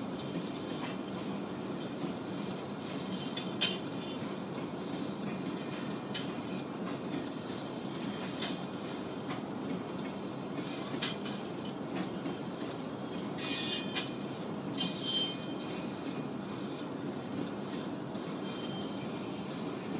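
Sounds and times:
rail joint clicks: 0.0s - 19.9s
train wheels rumbling on rails: 0.0s - 19.9s
high wheel squeal: 13.4s - 14.0s, 14.8s - 15.6s, 18.5s - 19.9s.

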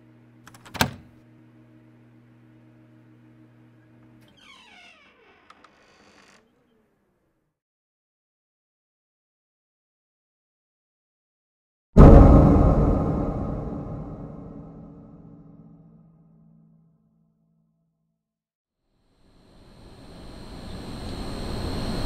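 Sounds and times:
deep boom sting: 12.0s - 15.7s
electrical hum: 19.6s - 22.0s.

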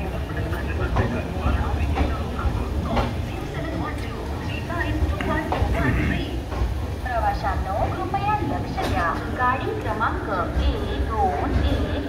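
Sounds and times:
train coach rumbling on track: 0.0s - 12.0s
voices: 0.0s - 12.0s.

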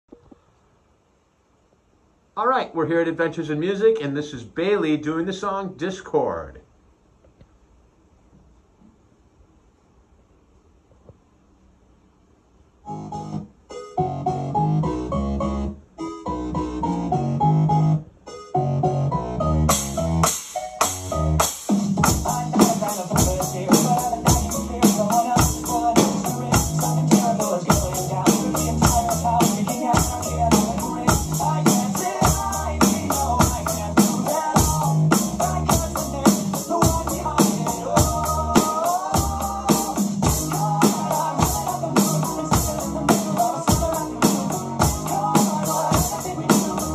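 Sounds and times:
electronic dance backing track: 12.9s - 46.9s
electronic drums fast beat: 19.7s - 46.9s.

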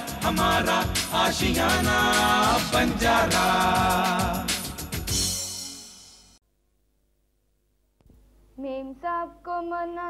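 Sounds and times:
person singing: 0.0s - 4.8s.

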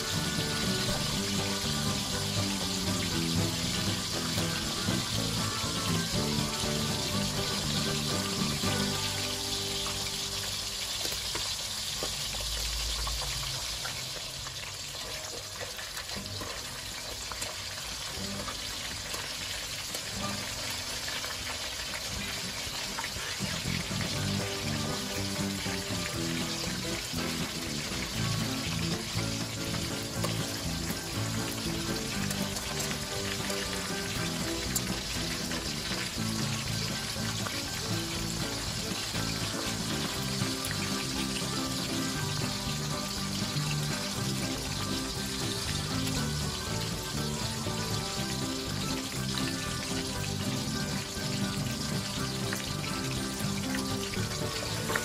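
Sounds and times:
fish sizzling in hot oil: 0.0s - 55.0s.

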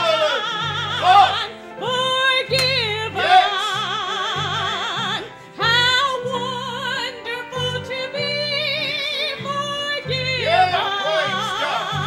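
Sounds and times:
instrumental accompaniment: 0.0s - 12.0s
woman singing with vibrato: 0.0s - 12.0s.

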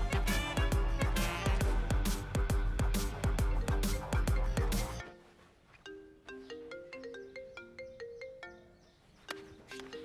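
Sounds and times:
marimba phone ringtone: 3.4s - 5.2s, 5.9s - 9.0s.

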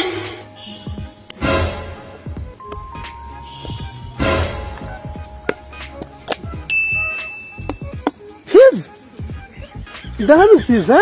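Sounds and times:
high-pitched ding-like tone: 2.6s - 5.6s, 6.7s - 7.9s.

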